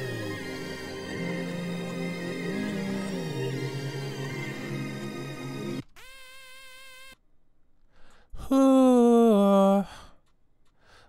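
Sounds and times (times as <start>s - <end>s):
synth lead note sliding up: 0.0s - 5.8s.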